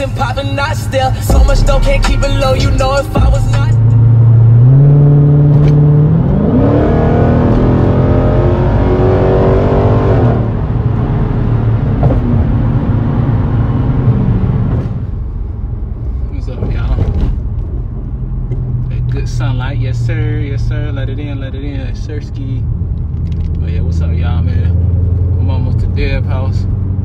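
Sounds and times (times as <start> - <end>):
car engine accelerating: 0.0 - 27.0.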